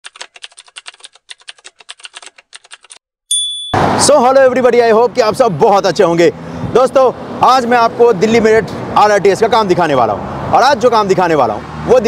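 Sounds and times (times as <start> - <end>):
bell ding: 3.3 - 3.9.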